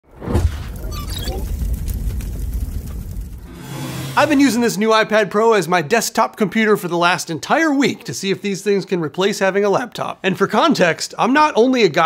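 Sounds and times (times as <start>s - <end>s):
loud burst with deep rumble: 0.3s - 4.6s.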